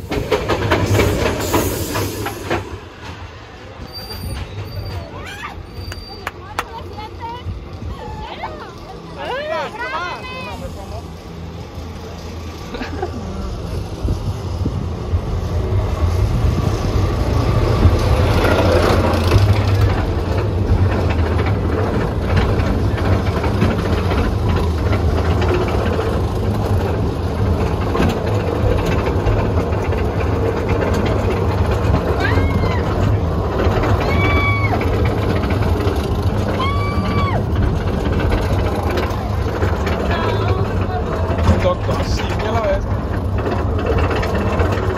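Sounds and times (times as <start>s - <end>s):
roller coaster mechanical rumble: 0.0s - 44.9s
riders screaming: 4.6s - 6.2s, 32.0s - 35.2s, 36.3s - 37.8s.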